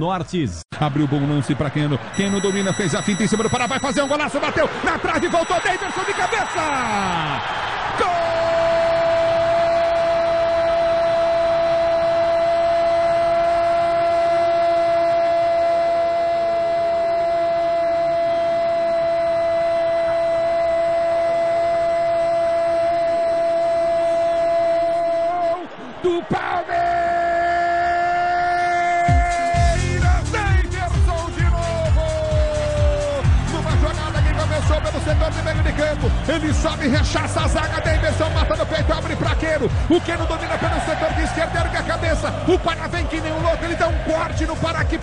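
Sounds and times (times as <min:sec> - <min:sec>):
radio jingle with a beat: 0:02.2 - 0:07.3, 0:29.1 - 0:45.0
commentator's long goal cry: 0:27.3 - 0:33.2.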